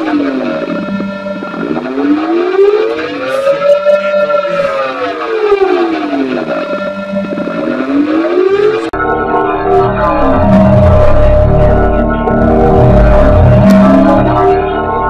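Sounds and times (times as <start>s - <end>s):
gliding vocoder tones: 0.0s - 15.0s
held steady bass tones: 0.0s - 15.0s.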